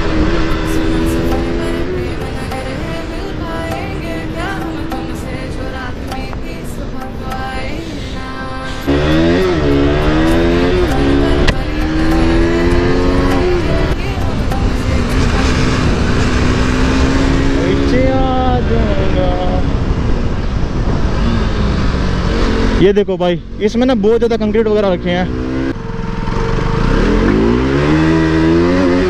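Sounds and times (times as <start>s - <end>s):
motorcycle engine accelerating: 0.0s - 2.7s, 8.9s - 29.0s
wind rushing over microphone: 8.9s - 22.9s.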